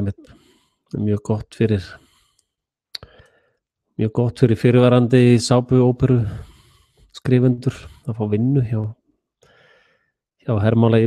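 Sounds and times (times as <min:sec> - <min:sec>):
mouth click: 0:02.4 - 0:03.3
soft intake of breath: 0:06.2 - 0:07.1.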